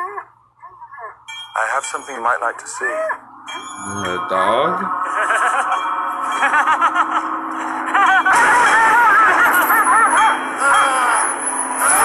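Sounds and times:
musical drone: 1.3s - 12.0s
short ringing pitch-bending notes: 3.3s - 12.0s.

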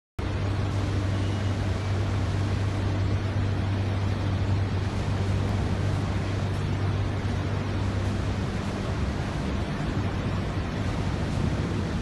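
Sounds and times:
steady low hum: 0.2s - 12.0s.

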